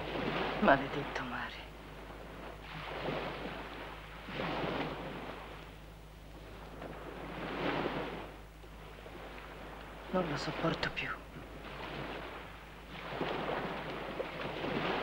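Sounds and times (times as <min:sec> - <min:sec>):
sea waves surging: 0:00.0 - 0:15.0.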